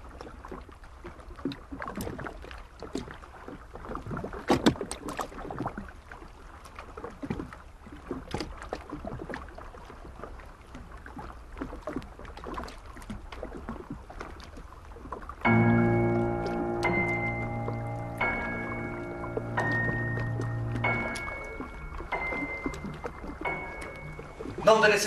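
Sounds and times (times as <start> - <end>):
knocks and creaks: 15.5 - 24.7
low rumble: 15.5 - 25.0.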